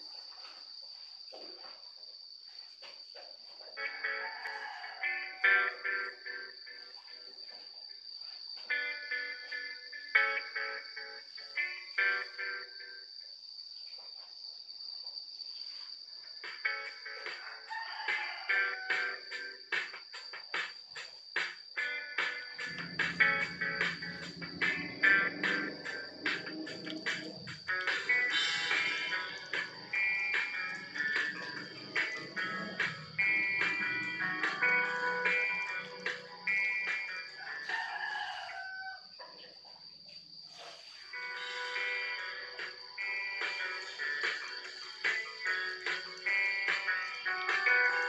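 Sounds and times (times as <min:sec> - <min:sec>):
thin high whine: 0:18.9 - 0:37.5
music through small loudspeaker: 0:21.4 - 0:37.7, 0:41.2 - 0:48.0.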